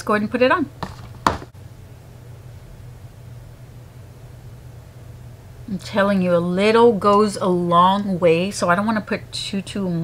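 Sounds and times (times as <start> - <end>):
steady low hum: 0.0 - 10.0
short knock: 0.8 - 1.5.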